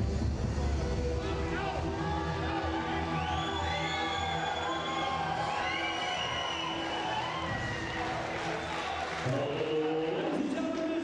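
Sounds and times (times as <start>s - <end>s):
crowd cheering: 1.3s - 10.9s
high rising whoops: 2.8s - 8.8s.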